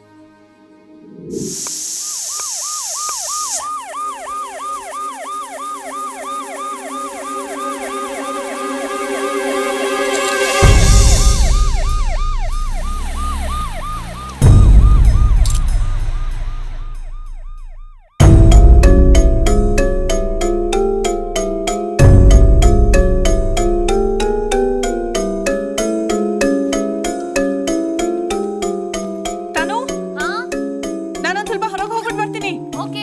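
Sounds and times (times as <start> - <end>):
ambulance siren wailing: 1.0 - 32.9
music with mallet notes: 18.3 - 33.0.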